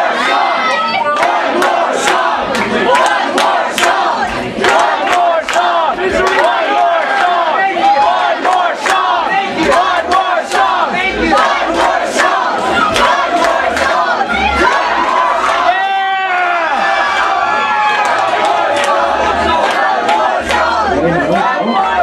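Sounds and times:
rhythmic clapping: 0.0s - 15.7s, 17.2s - 22.0s
crowd cheering and shouting: 0.0s - 22.0s.

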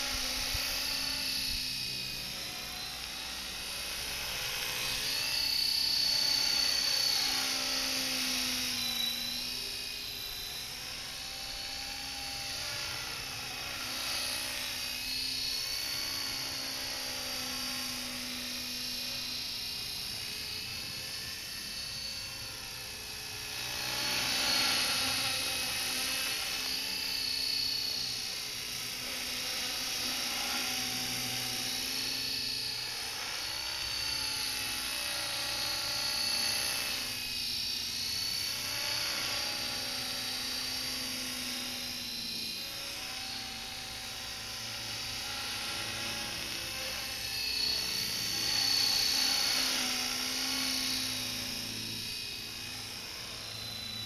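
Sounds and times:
model helicopter whine and hum: 0.0s - 54.0s.

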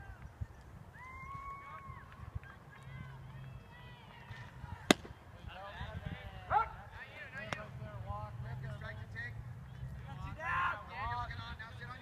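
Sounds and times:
baseball smacking into mitt: 4.8s - 5.2s.

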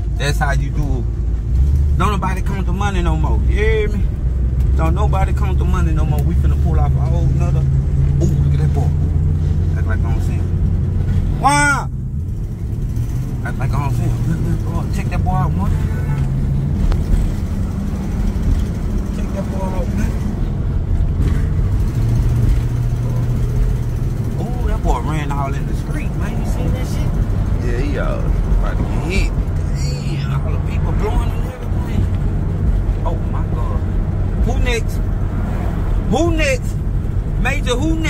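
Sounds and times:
car engine and road noise: 0.0s - 38.0s.

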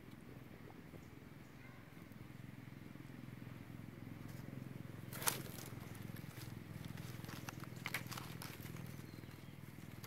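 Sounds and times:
monkeys wrestling on dry leaves: 5.1s - 10.0s
sharp crackles: 5.1s - 10.0s.

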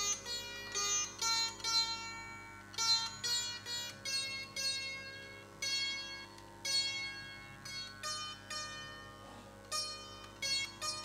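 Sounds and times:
sitar notes plucked: 0.0s - 11.0s.

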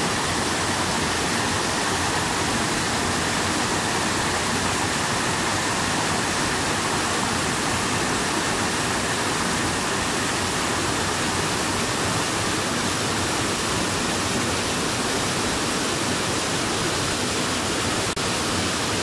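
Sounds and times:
waterfall splashing into pool: 0.0s - 19.0s.

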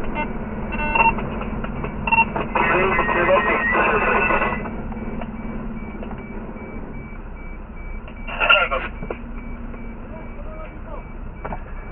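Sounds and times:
fire truck engine running: 0.0s - 11.9s
reversing alarm short high beeps: 2.9s - 11.9s.

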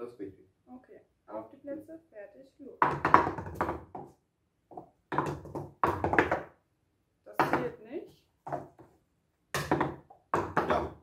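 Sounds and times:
plastic cups knocking and clattering: 2.8s - 6.6s, 7.3s - 7.8s, 8.4s - 11.0s.

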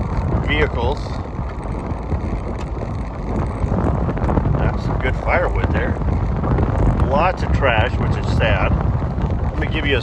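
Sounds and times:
car driving over gravel: 0.0s - 10.0s
wind on microphone: 0.0s - 10.0s.

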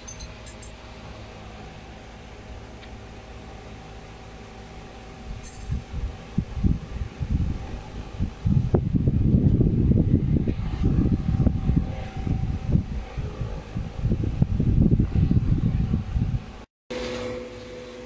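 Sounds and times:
air buffeting microphone: 0.8s - 16.7s.

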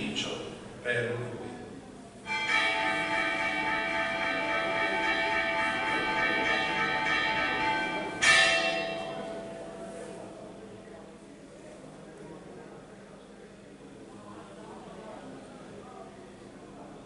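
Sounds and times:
altar bells ringing: 2.3s - 10.6s.

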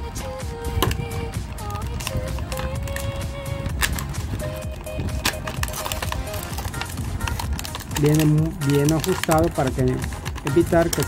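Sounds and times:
background music with held notes: 0.0s - 11.0s
plastic blister pack crackling: 0.5s - 11.0s.

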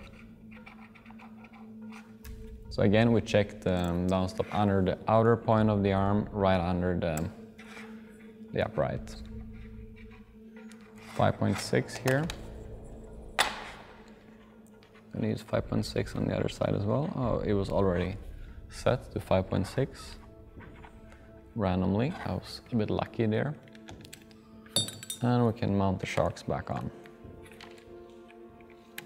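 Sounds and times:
soft background music: 0.0s - 29.0s.

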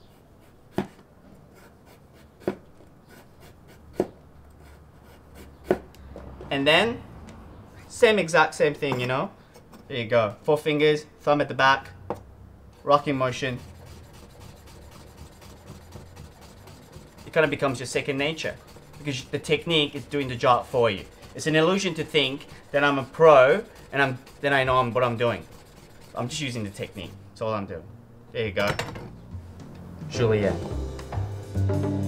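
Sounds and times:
knife slicing carrot on board: 5.4s - 5.9s.

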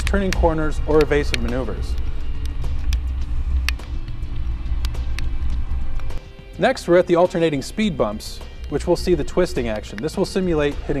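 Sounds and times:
car driving rumble: 0.0s - 6.2s.

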